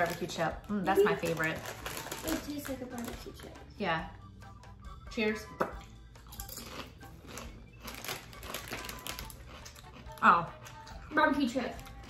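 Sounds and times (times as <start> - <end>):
foil chip bag crinkling: 0.0 - 3.5, 6.5 - 10.8
potato chips being chewed: 0.0 - 3.6, 5.8 - 12.0.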